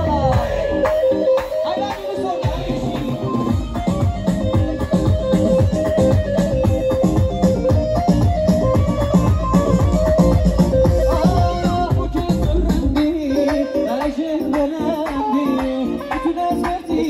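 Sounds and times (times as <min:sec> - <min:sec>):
band playing dance music: 0:00.0 - 0:17.0.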